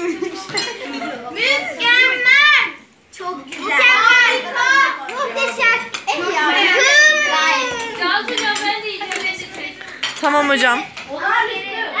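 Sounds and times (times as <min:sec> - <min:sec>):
children talking: 0:00.0 - 0:12.0
forks clinking against plates: 0:08.3 - 0:11.1.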